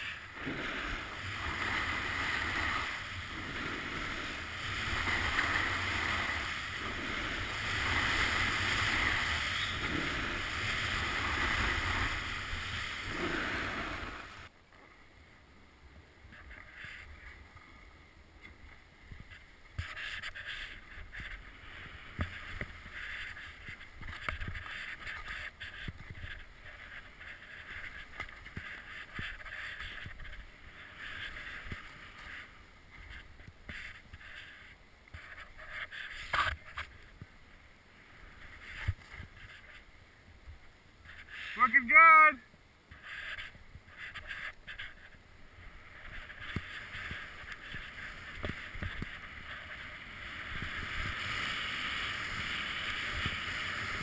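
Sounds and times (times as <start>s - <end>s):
ski edges scraping over snow: 0.0s - 14.5s, 19.1s - 40.0s, 41.0s - 41.8s, 42.9s - 54.0s
rush of wind and snow: 0.0s - 54.0s.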